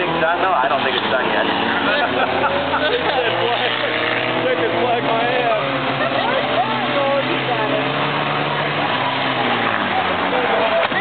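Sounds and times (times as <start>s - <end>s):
noisy background: 0.0s - 11.0s
race car engines: 0.0s - 11.0s.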